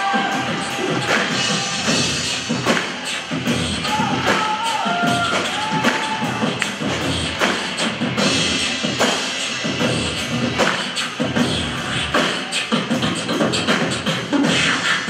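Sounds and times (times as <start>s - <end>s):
bass: 0.0s - 15.0s
drums: 0.0s - 15.0s
person beatboxing into microphone: 0.0s - 15.0s.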